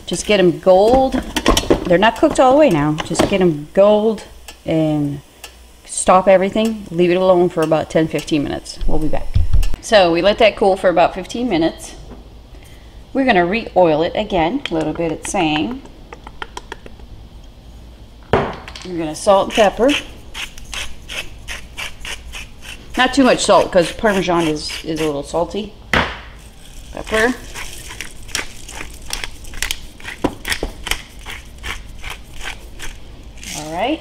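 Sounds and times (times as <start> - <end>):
pepper grinder crunching: 19.4 - 25.2, 26.4 - 33.8.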